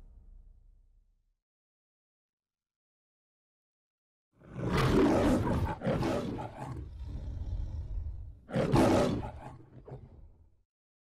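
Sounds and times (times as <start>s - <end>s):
lion roaring: 4.4s - 10.3s.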